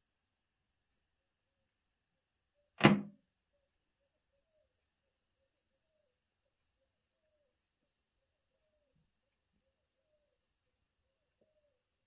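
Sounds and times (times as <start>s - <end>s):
thumb thump on phone screen: 2.8s - 3.1s.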